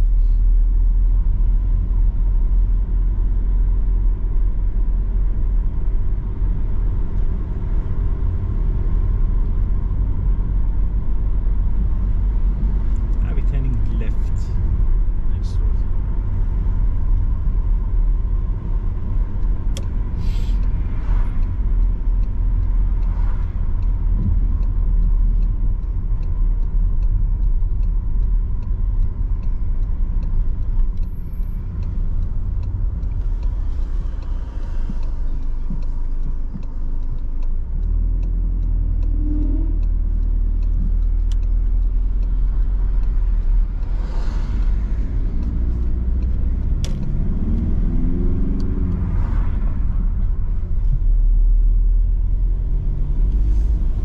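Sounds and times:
car engine rumble: 0.0 - 54.0
tyres on road: 0.0 - 54.0.

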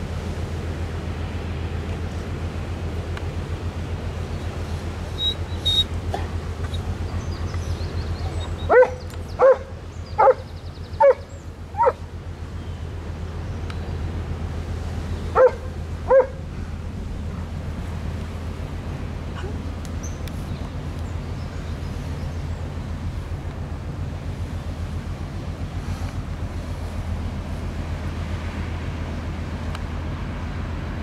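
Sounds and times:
ship diesel engine drone: 0.0 - 31.0
dog barking: 8.7 - 10.4, 11.0 - 12.0, 15.4 - 16.4.

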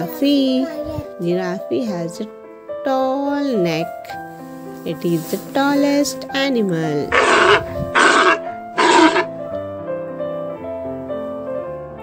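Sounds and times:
background music with held notes: 0.0 - 12.0
rough animal calls: 7.1 - 9.3.

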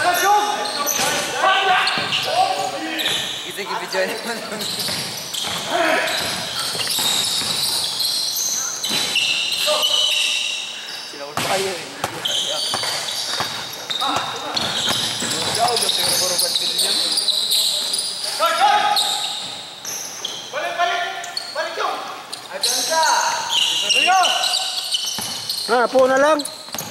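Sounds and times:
sneaker squeaks: 0.0 - 26.9
basketball bouncing: 4.8 - 8.0, 11.4 - 16.4, 25.0 - 25.5, 26.7 - 26.9.

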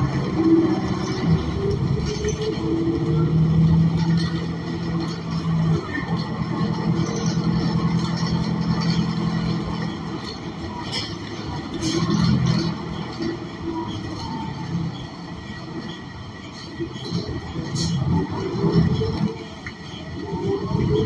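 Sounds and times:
bus engine droning: 0.0 - 21.0.

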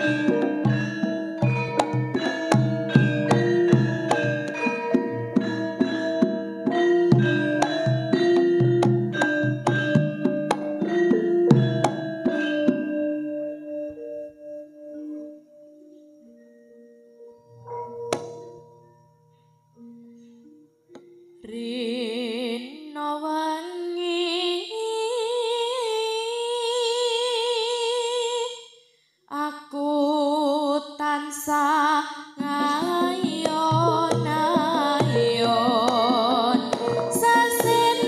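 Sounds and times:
woman singing with vibrato: 0.0 - 1.4, 21.4 - 28.7, 29.3 - 38.0
hand drum: 0.0 - 13.3, 17.7 - 18.6, 32.4 - 38.0
gamelan struck metal keys ringing: 0.0 - 21.4, 33.6 - 38.0.

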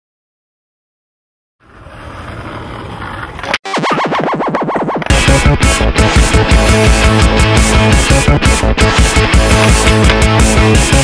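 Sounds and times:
skateboard wheels rolling on asphalt: 1.6 - 3.6
skateboard clack: 1.7 - 3.6, 9.4 - 10.5
wobbling electronic tone: 3.6 - 5.1.

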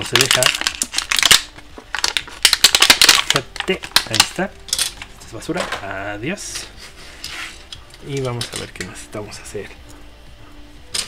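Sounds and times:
plastic packaging crackling: 0.0 - 5.4.

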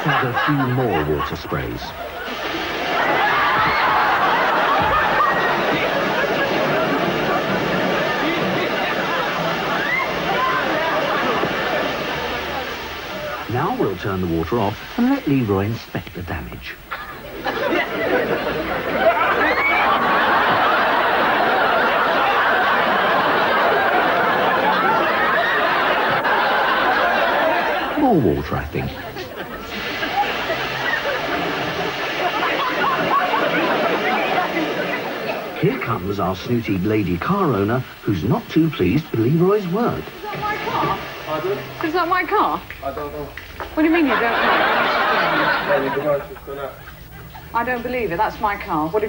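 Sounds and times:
people laughing: 0.0 - 14.0, 16.8 - 48.1
voices: 0.0 - 49.0
pressure hose spraying water: 2.1 - 15.7, 28.0 - 42.8
high-pressure water spray: 29.6 - 35.8.

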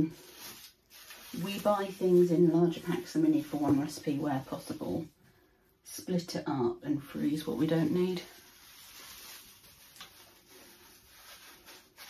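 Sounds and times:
cling film rustling: 8.0 - 12.0.

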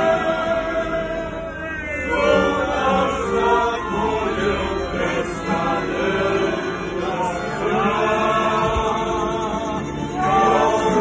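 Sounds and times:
accordion: 0.0 - 11.0
group of voices singing: 0.0 - 11.0
violin: 0.0 - 11.0.

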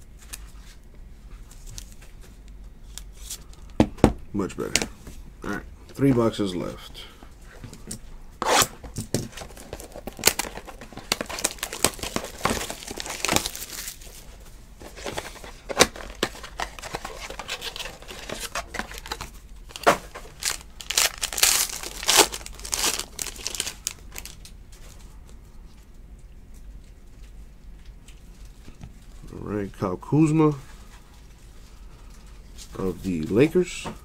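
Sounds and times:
box wrapping tearing and crinkling: 8.4 - 14.2, 14.9 - 24.4.

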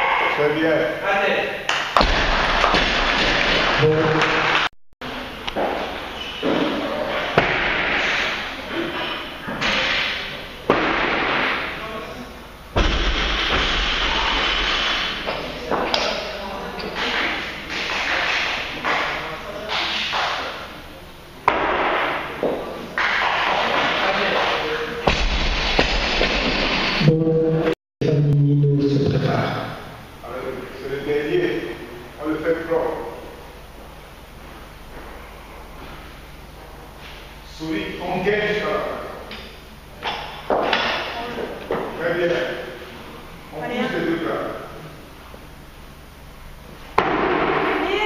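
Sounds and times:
barbell thudding on platform: 2.0 - 3.7
voices in a hall: 3.8 - 12.8, 15.0 - 25.1, 27.0 - 46.6.

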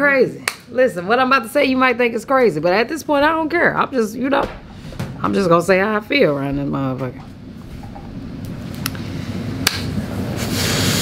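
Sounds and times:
low rumble: 2.5 - 10.1.

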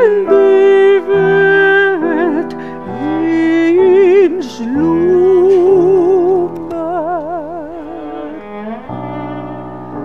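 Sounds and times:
instrumental accompaniment: 0.0 - 10.0.

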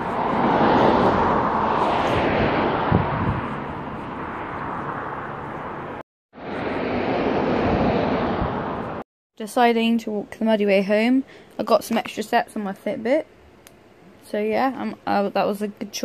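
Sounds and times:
car passing: 0.0 - 9.0
traffic hiss and rumble: 0.0 - 16.0.

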